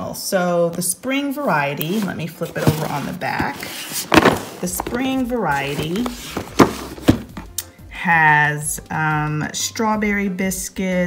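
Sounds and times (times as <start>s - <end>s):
cardboard box thunks and taps: 2.6s - 7.5s.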